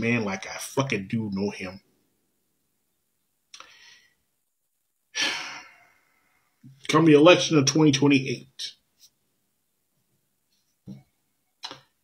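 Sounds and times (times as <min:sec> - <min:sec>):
man speaking: 0:00.0 - 0:01.8, 0:06.7 - 0:08.8
man sighing: 0:05.2 - 0:06.0.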